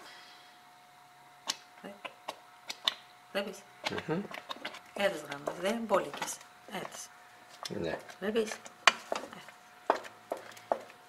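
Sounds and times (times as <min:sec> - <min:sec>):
wooden spoon stirring in a pot: 0:03.8 - 0:11.0.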